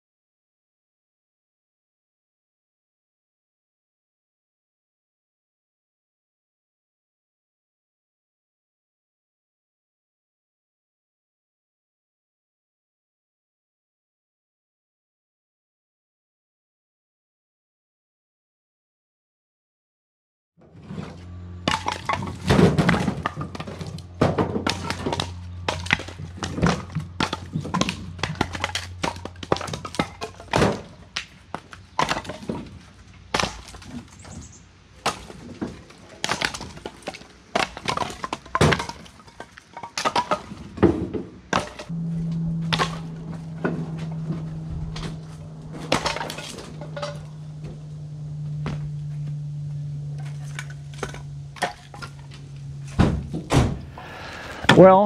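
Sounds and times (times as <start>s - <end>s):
firewood logs clattering on concrete: 20.7s - 41.9s, 42.6s - 49.0s, 50.1s - 53.8s.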